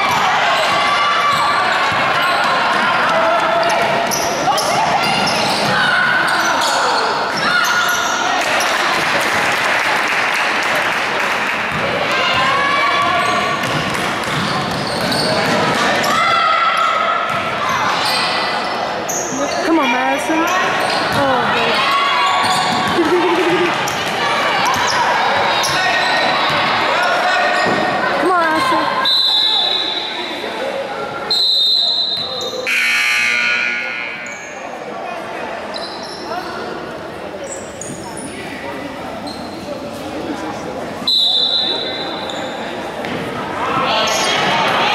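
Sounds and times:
crowd and players shouting: 0.0 - 37.2, 40.5 - 44.9
referee whistle blasts: 29.0 - 30.1, 31.3 - 34.6, 41.1 - 42.1.

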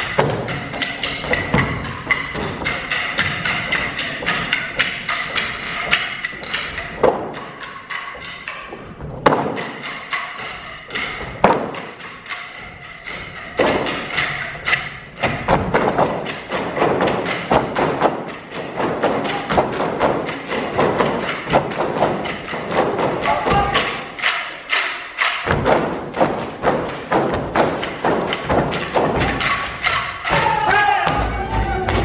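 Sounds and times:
wooden sticks clacking: 0.0 - 32.0
live folk band music: 12.4 - 32.0.

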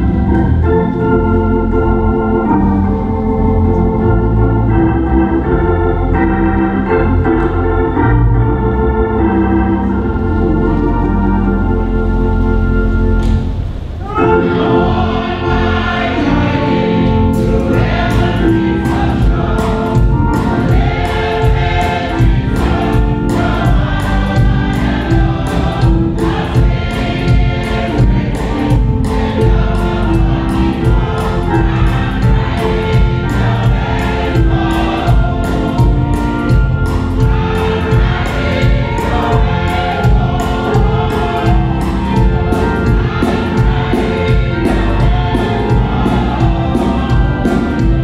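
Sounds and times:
choir singing gospel song: 0.0 - 48.0
instrumental accompaniment: 0.0 - 48.0
regular beat: 13.2 - 48.0.

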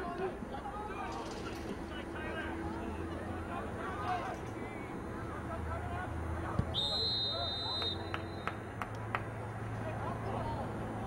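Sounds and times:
referee's whistle blast: 6.7 - 8.4.

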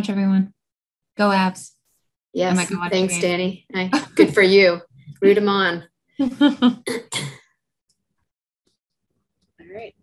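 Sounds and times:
person's voice: 2.4 - 6.9, 9.6 - 10.0.

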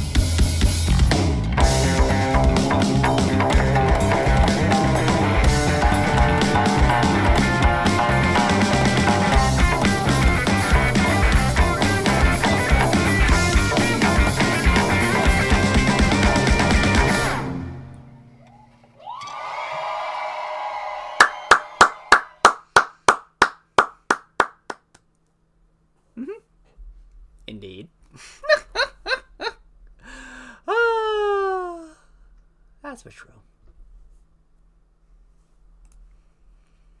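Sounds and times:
crowd cheering and screaming: 18.5 - 22.2
person clapping hands: 21.2 - 25.1.

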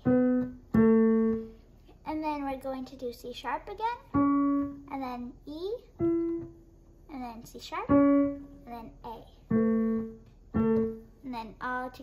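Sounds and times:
piano notes stepping down: 0.0 - 1.7, 4.1 - 4.9, 5.9 - 6.8, 7.8 - 8.6, 9.5 - 11.2.

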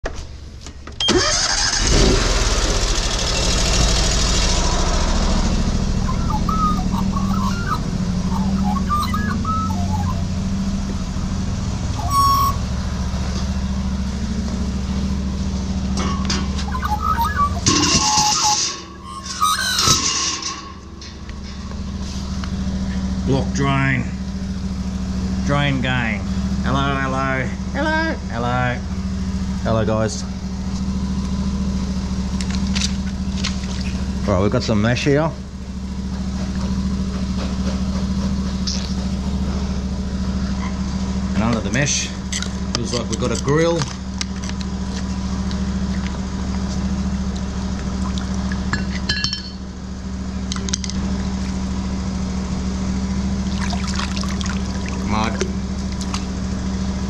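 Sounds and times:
petrol engine running: 0.4 - 34.2, 35.4 - 57.0.

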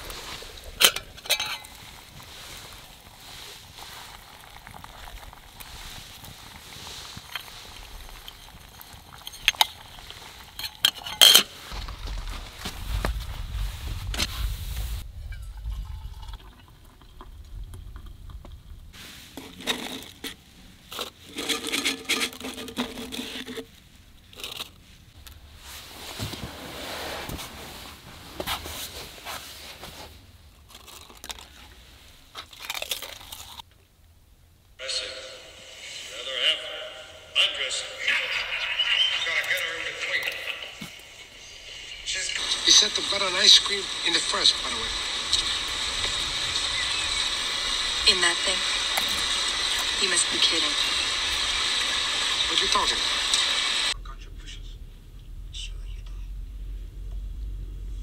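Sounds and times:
metal kettle and utensils clinking: 0.2 - 2.0, 7.2 - 11.6
low rumble: 11.7 - 19.0, 50.7 - 58.0.

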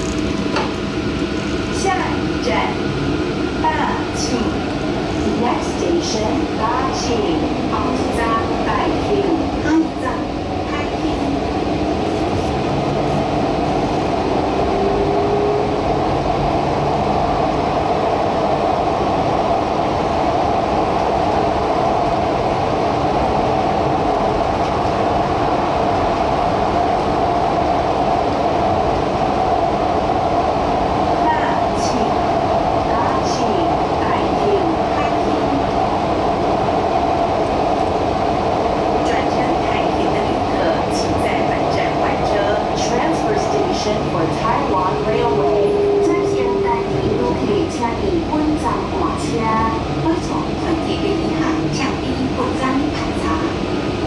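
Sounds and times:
train wheels rumbling on rails: 0.0 - 54.0.

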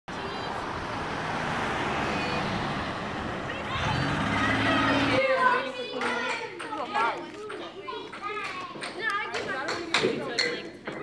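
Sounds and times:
road traffic noise: 0.0 - 8.9
van driving past: 0.1 - 5.3
voices: 0.1 - 11.0.

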